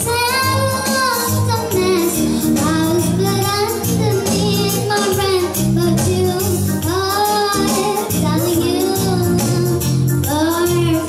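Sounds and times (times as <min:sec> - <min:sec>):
electronic keyboard with beat: 0:00.0 - 0:11.0
girl singing: 0:00.0 - 0:11.0.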